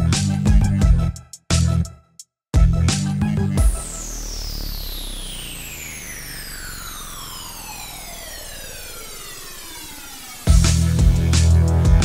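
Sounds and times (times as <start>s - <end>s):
buzzy synthesizer downsweep: 2.6s - 12.0s.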